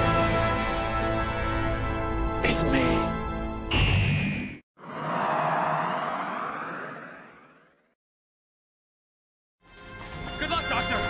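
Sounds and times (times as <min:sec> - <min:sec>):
electronic whoosh: 0:04.2 - 0:08.0.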